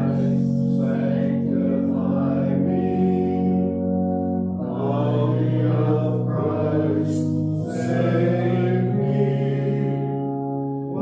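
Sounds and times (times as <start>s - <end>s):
held accompaniment chords: 0.0s - 11.0s
slow hymn singing: 0.0s - 11.0s.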